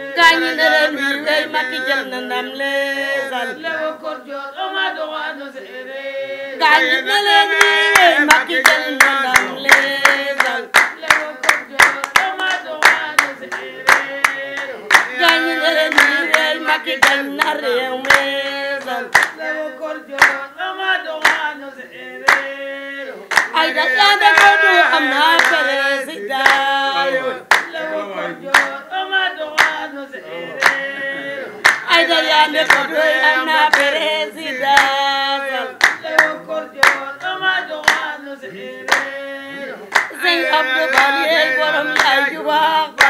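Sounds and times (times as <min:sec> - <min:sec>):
women singing together: 0:00.0 - 0:43.0
hand clapping: 0:07.5 - 0:20.5, 0:21.1 - 0:21.5, 0:22.2 - 0:22.5, 0:23.3 - 0:25.8, 0:26.4 - 0:26.8, 0:27.5 - 0:27.8, 0:28.4 - 0:29.9, 0:30.6 - 0:38.2, 0:38.8 - 0:39.2, 0:39.9 - 0:43.0.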